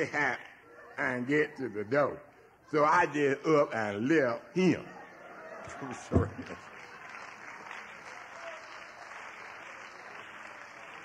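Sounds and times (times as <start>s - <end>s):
audience applauding: 5.3s - 11.0s.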